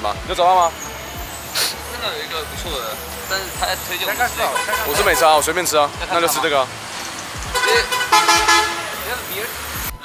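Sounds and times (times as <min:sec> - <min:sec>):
street traffic hum: 0:00.0 - 0:10.0
vehicle horn: 0:03.8 - 0:05.7, 0:07.5 - 0:09.4.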